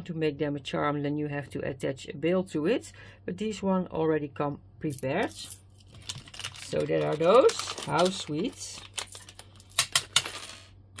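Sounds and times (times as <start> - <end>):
small charms clinking: 5.4 - 10.2.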